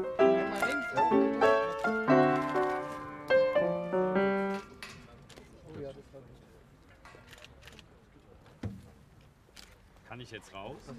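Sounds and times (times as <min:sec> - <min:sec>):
slow piano melody: 0:00.0 - 0:04.8.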